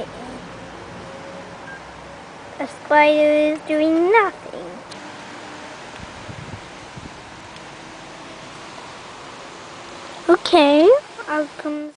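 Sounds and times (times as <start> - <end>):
outdoor background hiss: 0.0 - 11.9.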